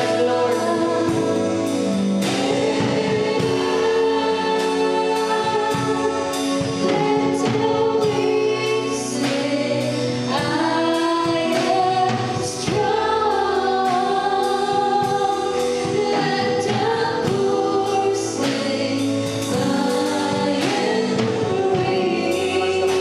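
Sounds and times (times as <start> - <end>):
band with steady beat: 0.0 - 23.0
voices singing gospel song: 0.0 - 23.0.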